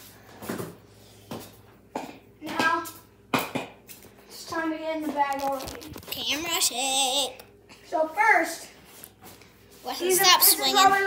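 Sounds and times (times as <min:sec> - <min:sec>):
children talking: 0:04.5 - 0:07.4, 0:09.9 - 0:11.0.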